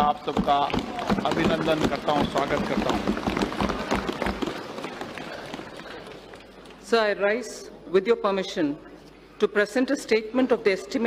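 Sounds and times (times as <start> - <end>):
people thumping desks: 0.0 - 6.4.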